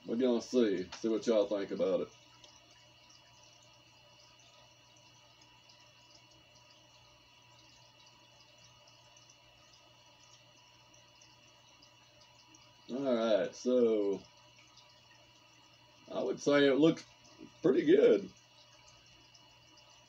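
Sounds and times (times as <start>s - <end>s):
aquarium filter hum and hiss: 0.0s - 20.0s.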